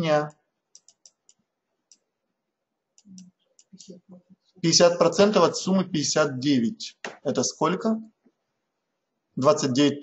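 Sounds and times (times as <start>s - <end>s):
faint mouse clicks: 0.3s - 2.1s.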